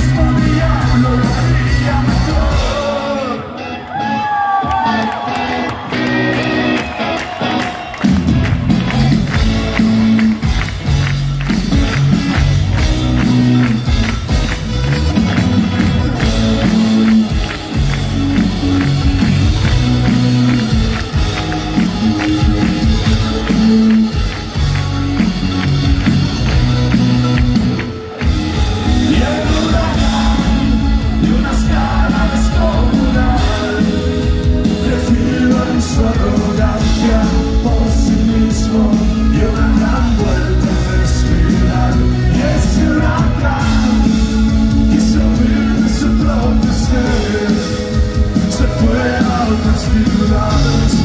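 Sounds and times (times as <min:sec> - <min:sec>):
crowd voices: 0:00.0 - 0:51.0
live rock band music: 0:00.0 - 0:51.0.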